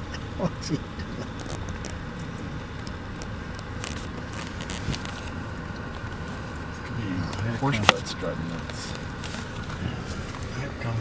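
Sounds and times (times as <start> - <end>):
car engine running: 0.0 - 11.0.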